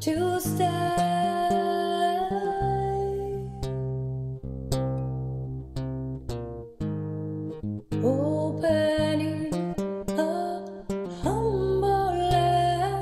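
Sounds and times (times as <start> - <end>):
person singing: 0.0 - 3.7, 8.0 - 13.0
acoustic guitar plucked notes: 0.0 - 13.0.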